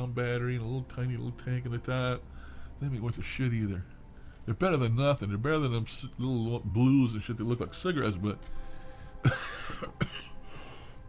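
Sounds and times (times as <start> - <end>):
man laughing breathily: 9.2 - 11.0.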